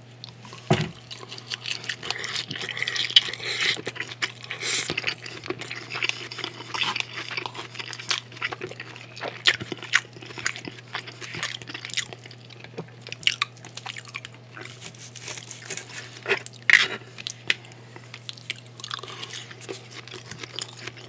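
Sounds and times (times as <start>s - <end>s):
chewing with wet mouth sounds: 0.1s - 21.0s.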